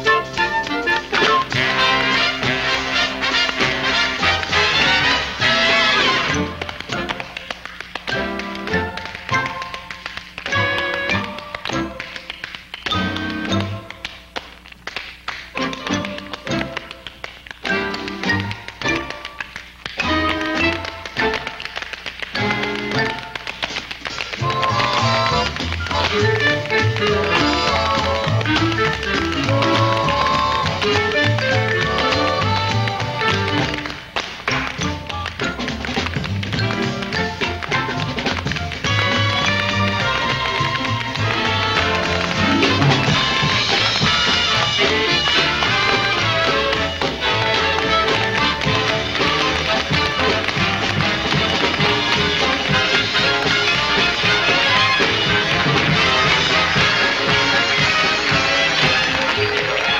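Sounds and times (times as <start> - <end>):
musical accompaniment: 0.0 - 59.9
tap shoes clicking on stage: 0.0 - 59.9.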